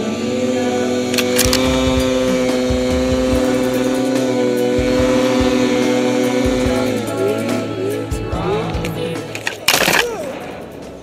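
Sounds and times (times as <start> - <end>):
snowmobile engine at high revs: 0.0 - 9.3.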